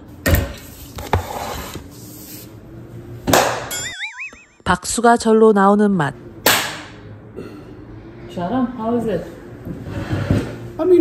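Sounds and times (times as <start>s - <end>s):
warbling comic sound effect: 3.7s - 5.0s.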